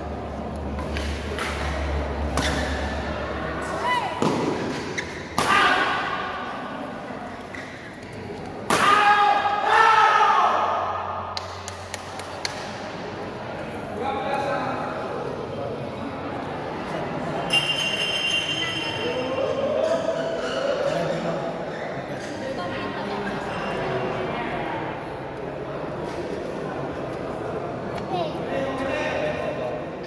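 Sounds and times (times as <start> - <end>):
racket hitting shuttlecock: 0.7 - 3.0, 4.2 - 5.9
loud voices shouting: 5.4 - 6.4, 8.7 - 11.2.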